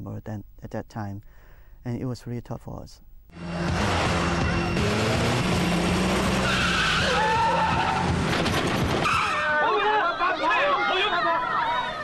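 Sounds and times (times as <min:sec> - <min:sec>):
engine and tyre noise: 0:03.4 - 0:09.4
tyres skidding squeals: 0:03.7 - 0:09.7
crowd shouting and screaming: 0:06.9 - 0:08.2, 0:09.0 - 0:12.0.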